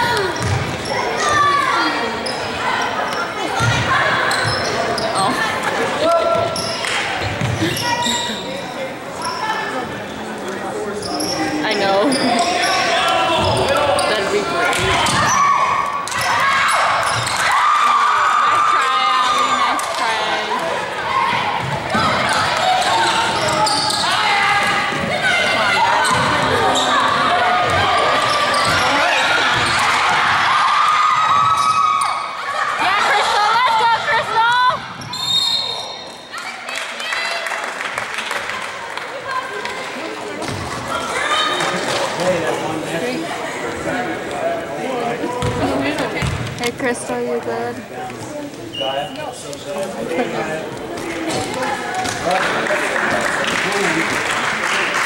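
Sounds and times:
people calling out and chattering: 0.0s - 55.0s.

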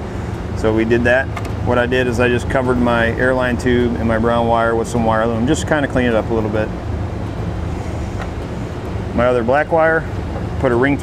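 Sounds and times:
low machine hum: 2.3s - 11.0s.

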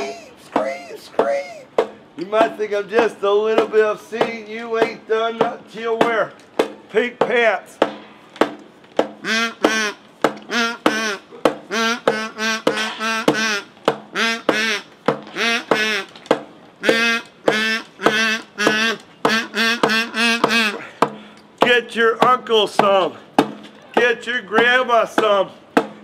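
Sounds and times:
acoustic guitar strumming: 9.2s - 16.0s
kazoo buzzing: 9.2s - 16.2s, 16.8s - 21.0s.

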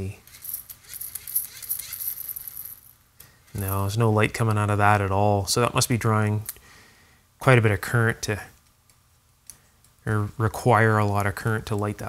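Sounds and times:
dynamo flashlight rattling whir: 0.2s - 2.4s.

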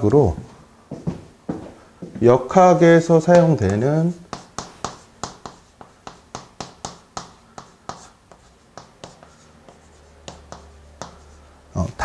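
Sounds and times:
chalk tapping and scratching: 3.2s - 11.7s.

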